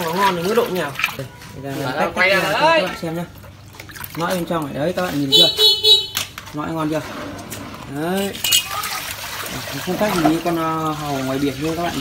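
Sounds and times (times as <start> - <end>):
water pouring onto tiled floor: 0.0 - 5.3, 6.2 - 12.0.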